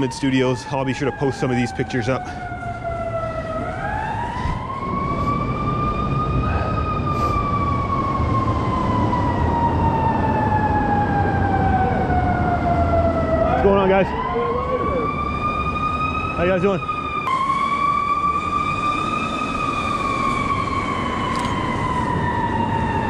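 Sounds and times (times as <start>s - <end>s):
low rumble of street traffic: 0.0s - 23.0s
siren wailing: 0.0s - 23.0s.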